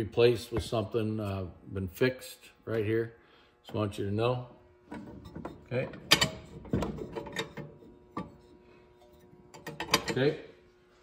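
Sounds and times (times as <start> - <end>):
metallic clicks and knocks: 9.5 - 10.2.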